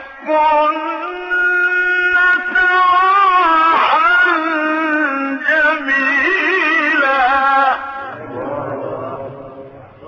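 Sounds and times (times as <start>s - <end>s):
man reciting: 0.0s - 10.0s.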